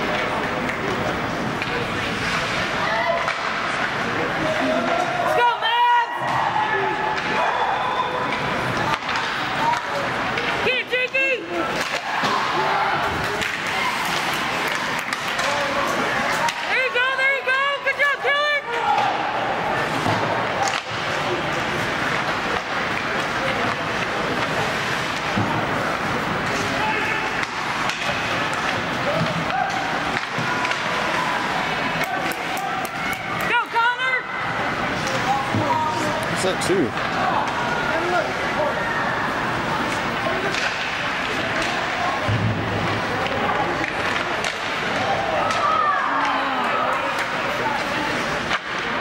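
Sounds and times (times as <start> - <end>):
skates scraping on ice: 0.0 - 5.3, 8.2 - 18.1, 18.9 - 33.8
chatter of spectators: 0.0 - 49.0
sticks and puck clacking: 0.0 - 49.0.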